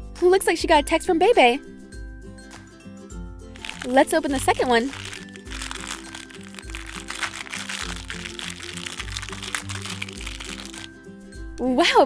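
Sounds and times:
foil wrapper crinkling: 3.6 - 11.0.

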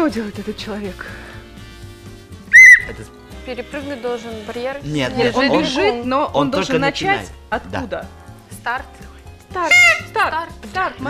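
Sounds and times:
quiet background music: 0.0 - 11.0
shrill warbling whistle: 2.5 - 3.0, 9.7 - 10.2.

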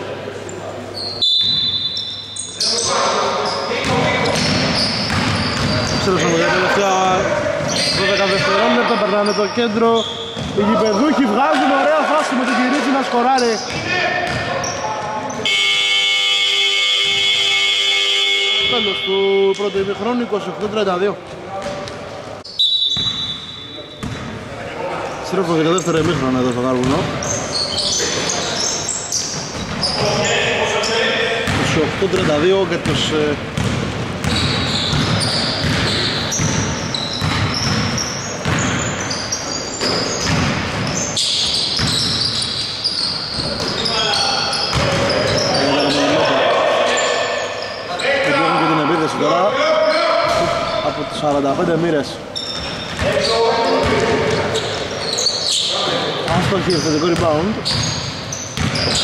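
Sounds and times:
voices: 0.0 - 16.0, 23.7 - 33.4, 41.2 - 57.9
basketball bouncing on hardwood floor: 3.8 - 6.0, 10.4 - 10.6, 33.6 - 38.8, 39.8 - 41.0, 58.6 - 59.0.

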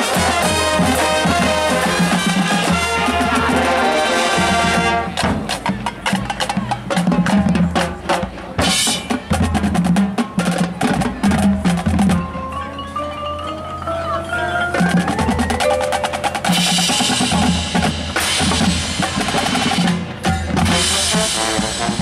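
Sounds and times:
drum line playing: 0.0 - 22.0
marching band with brass: 0.0 - 22.0.

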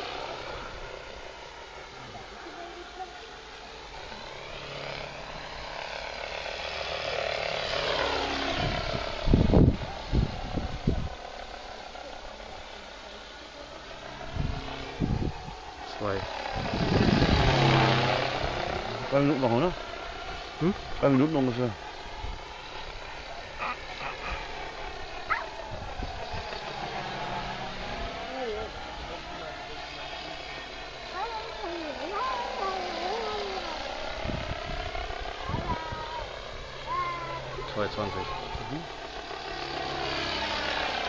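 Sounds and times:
rc helicopter rotor hum: 0.0 - 41.0.

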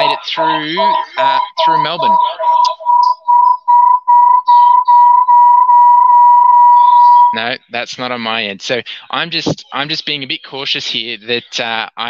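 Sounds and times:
high whistling audio feedback: 0.0 - 7.5.

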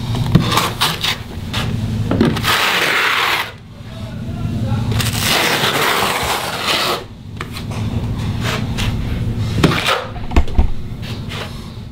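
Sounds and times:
trowel scraping wet mortar: 2.3 - 3.6, 5.0 - 7.1.

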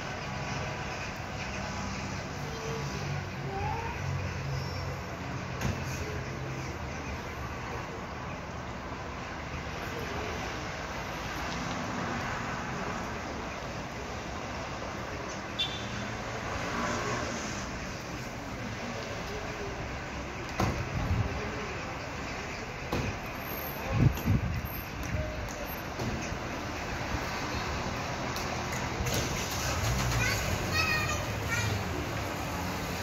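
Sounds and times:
town traffic hum: 0.0 - 33.0.

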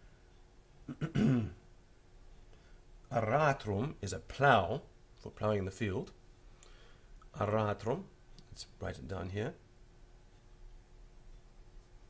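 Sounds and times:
man clearing his throat: 0.9 - 1.6.

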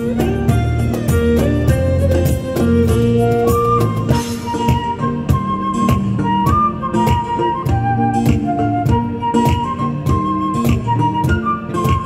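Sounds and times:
flute melody of long notes: 0.0 - 12.0
steady percussion beat: 0.0 - 12.0
violin: 0.0 - 12.0.

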